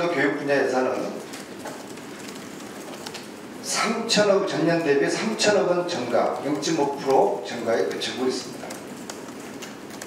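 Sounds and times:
meeting room noise: 0.0 - 10.0.

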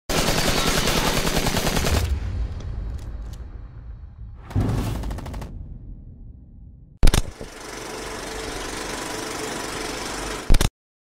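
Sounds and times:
rapid automatic gunfire: 0.1 - 2.1, 5.0 - 5.5, 7.0 - 10.7.

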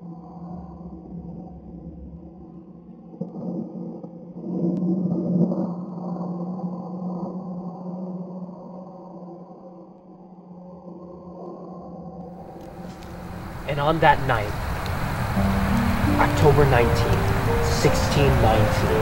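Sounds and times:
low ambient drone: 12.4 - 19.0.

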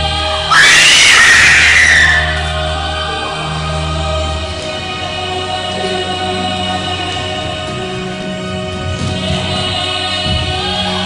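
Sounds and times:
choir-like voices holding notes: 0.0 - 11.0.

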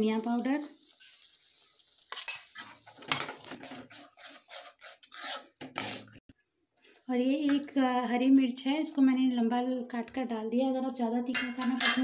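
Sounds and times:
spoon scraping metal pan: 1.0 - 6.2, 11.3 - 12.0.

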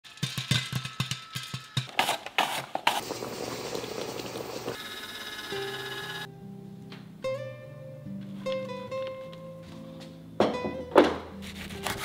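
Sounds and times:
music: 0.1 - 1.9, 5.4 - 12.0.

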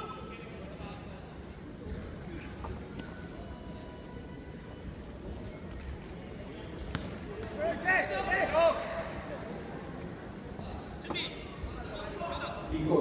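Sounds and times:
loud shouts echoing: 7.5 - 9.2.

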